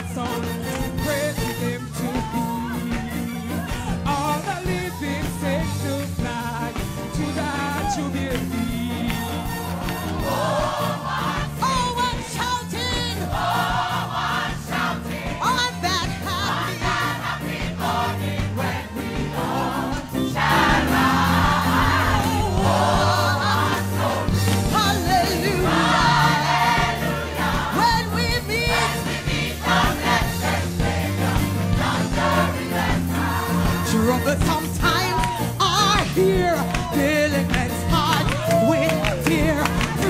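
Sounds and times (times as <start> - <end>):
band playing: 0.0 - 40.0
congregation singing gospel song: 0.0 - 40.0.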